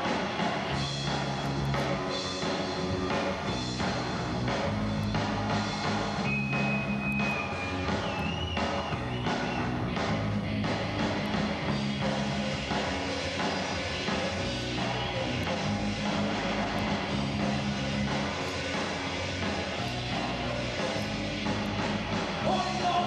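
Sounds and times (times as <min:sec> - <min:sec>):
bass line: 0:00.0 - 0:23.0
live rock band: 0:00.0 - 0:23.0.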